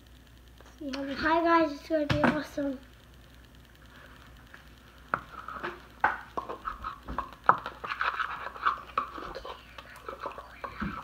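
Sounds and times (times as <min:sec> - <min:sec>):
spoon scraping thick paste: 0:05.2 - 0:11.0.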